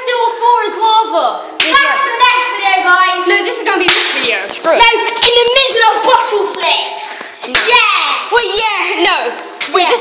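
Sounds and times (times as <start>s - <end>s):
children's high-pitched voices: 0.0s - 10.0s
sharp hand claps: 3.8s - 4.2s.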